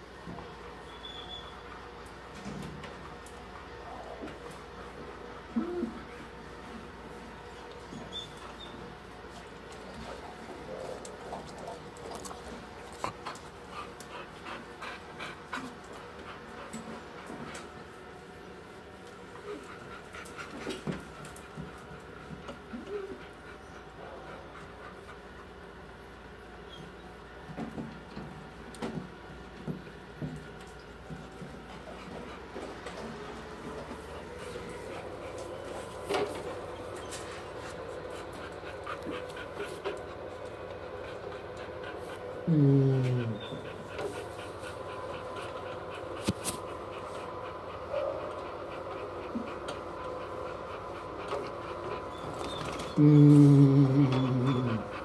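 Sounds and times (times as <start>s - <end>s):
background hum: 0.0s - 55.0s
dog panting: 9.7s - 18.0s, 19.1s - 25.8s, 31.0s - 53.0s, 53.8s - 55.0s.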